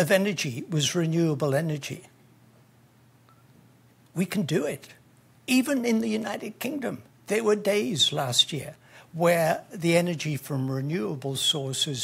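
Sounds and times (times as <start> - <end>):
faint short tone: 3.3 - 3.6.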